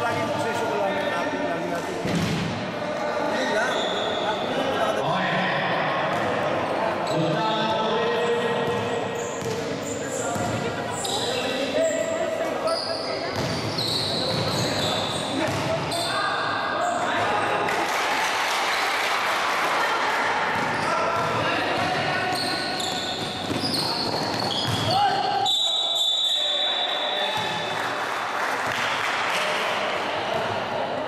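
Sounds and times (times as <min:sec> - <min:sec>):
sneakers squeaking: 0:03.4 - 0:04.5, 0:08.2 - 0:17.6, 0:20.5 - 0:27.7
basketball bouncing on wooden court: 0:09.4 - 0:09.7, 0:13.4 - 0:14.6, 0:15.4 - 0:15.8, 0:23.2 - 0:25.0.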